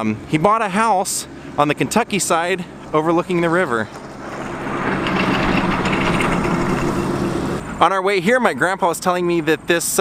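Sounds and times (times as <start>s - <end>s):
vehicle driving past: 2.6s - 7.8s.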